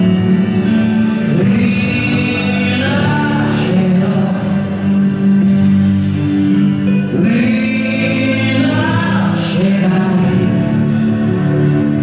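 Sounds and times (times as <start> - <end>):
choral singing with music: 0.0 - 12.0.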